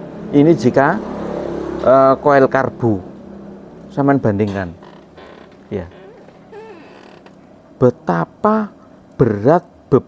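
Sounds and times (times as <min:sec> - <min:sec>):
man talking: 0:03.9 - 0:04.8, 0:05.6 - 0:06.1, 0:07.8 - 0:10.0.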